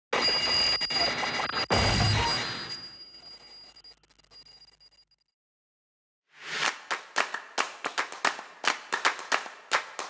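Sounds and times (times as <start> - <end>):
clap-like percussive hits: 6.5 - 10.0.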